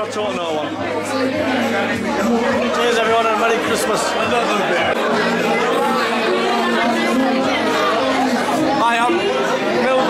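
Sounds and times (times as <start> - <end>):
background music: 0.0 - 10.0
crowd chatter: 0.0 - 10.0.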